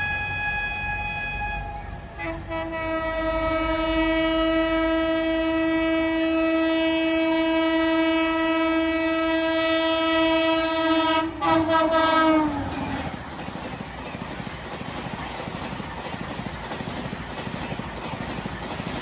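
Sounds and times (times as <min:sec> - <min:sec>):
locomotive air horn blast: 0:00.0 - 0:13.0.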